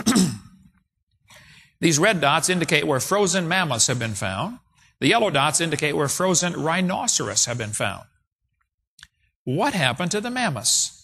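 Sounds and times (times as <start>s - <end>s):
man talking: 9.5s - 11.0s.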